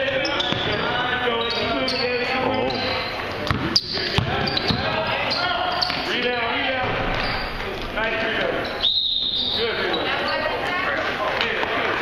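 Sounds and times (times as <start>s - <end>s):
shouting voices echoing: 0.0s - 12.0s
basketball dribbled on hardwood: 3.5s - 4.9s
short high whistle: 8.8s - 9.6s.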